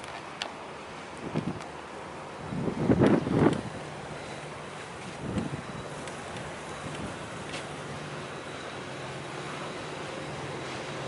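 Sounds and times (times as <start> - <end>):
steady low hum: 0.0 - 11.0
wind buffeting microphone: 1.2 - 1.7, 2.4 - 4.1, 4.9 - 7.6.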